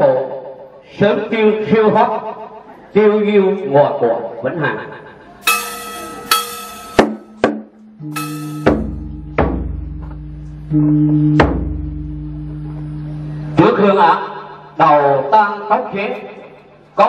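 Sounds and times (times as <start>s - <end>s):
bell-like strokes: 5.4s - 7.4s, 8.0s - 9.4s
sharp drum beats: 5.4s - 10.6s, 11.3s - 12.3s
low gong-like ringing tone: 5.4s - 14.8s.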